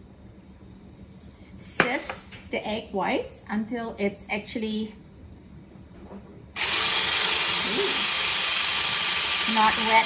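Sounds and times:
electric hand mixer running: 0:06.6 - 0:10.0.

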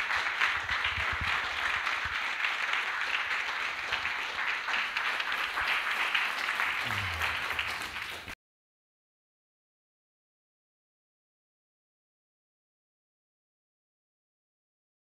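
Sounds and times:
congregation applauding: 0:00.0 - 0:08.4.

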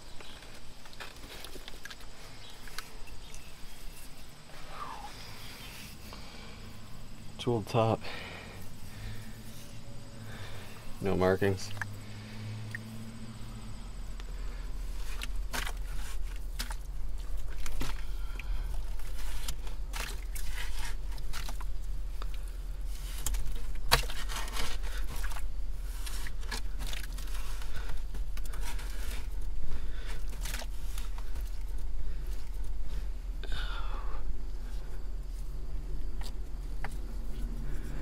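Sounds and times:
crumbling dirt: 0:00.0 - 0:12.8, 0:13.7 - 0:38.0
low steady hum: 0:00.0 - 0:38.0
hands scraping wet soil: 0:14.2 - 0:33.1.

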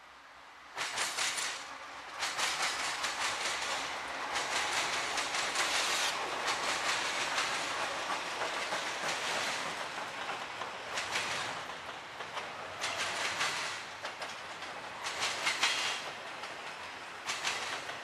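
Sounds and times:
steel wheels rushing on rail: 0:00.2 - 0:18.0
wheels clicking over rail joints: 0:00.8 - 0:18.0.

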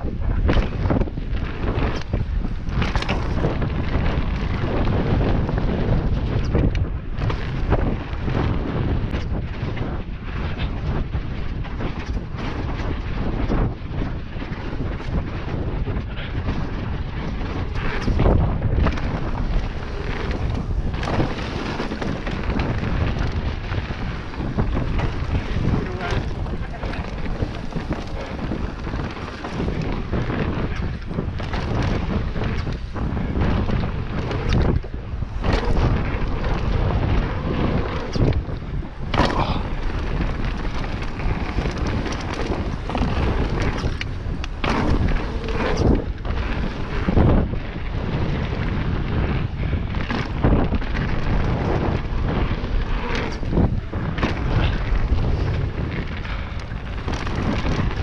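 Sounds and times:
bike clattering over bumps: 0:00.0 - 0:58.0
wind noise on microphone: 0:00.0 - 0:58.0
tyres rolling over dirt: 0:00.3 - 0:58.0.

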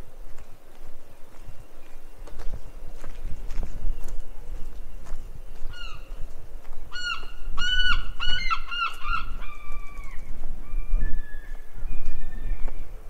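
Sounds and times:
bird calling: 0:01.0 - 0:13.0.

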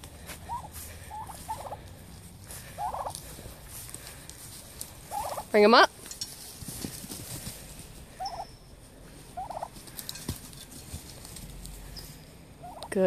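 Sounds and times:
faint clicks and scuffling: 0:00.0 - 0:08.0, 0:09.1 - 0:12.2
turkeys calling: 0:00.0 - 0:13.0.

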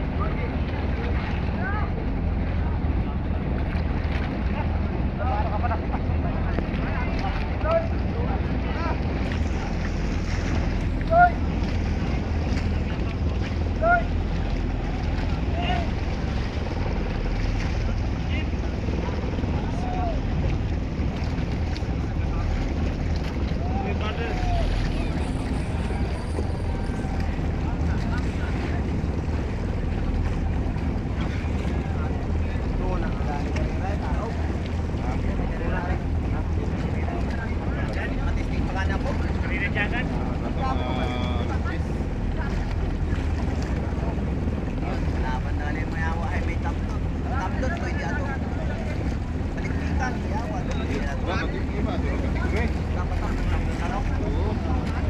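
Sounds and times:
low rumble on open water: 0:00.0 - 0:55.0.

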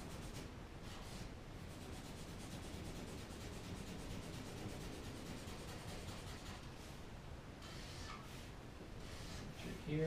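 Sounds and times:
drawing tool scratching on paper: 0:00.0 - 0:06.7, 0:07.6 - 0:09.6.

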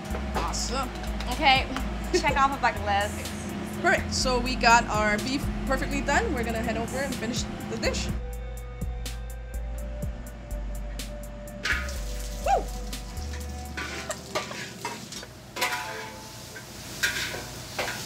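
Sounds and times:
quiet music beat: 0:00.0 - 0:14.7
vegetables sizzling in a wok: 0:11.7 - 0:18.0.

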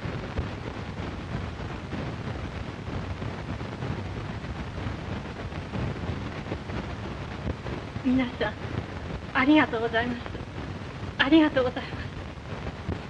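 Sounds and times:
film soundtrack hiss and crackle: 0:00.0 - 0:13.0.

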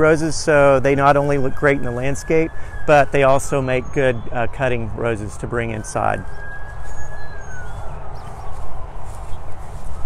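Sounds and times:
wind on microphone: 0:00.6 - 0:10.0.

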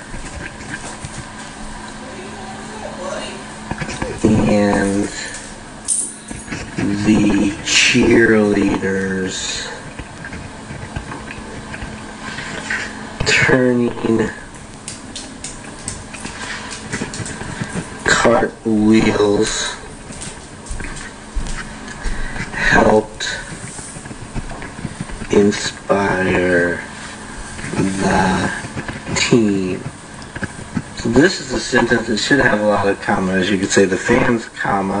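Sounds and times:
low background hum: 0:00.0 - 0:35.0.

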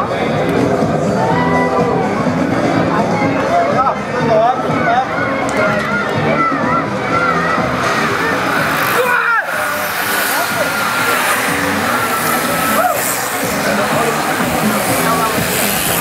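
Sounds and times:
crowd noise: 0:00.0 - 0:16.0
music with voice over loudspeaker: 0:00.0 - 0:16.0.

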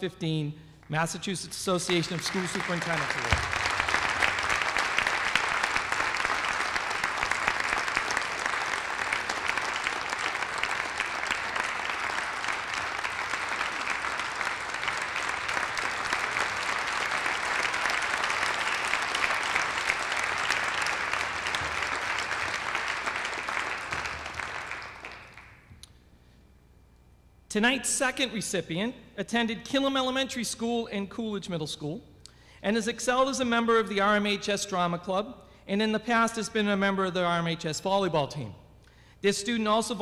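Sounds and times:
audience applauding: 0:01.7 - 0:25.7.

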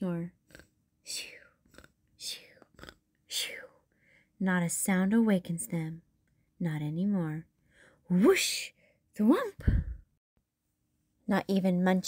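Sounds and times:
person imitating snoring: 0:00.4 - 0:03.0.

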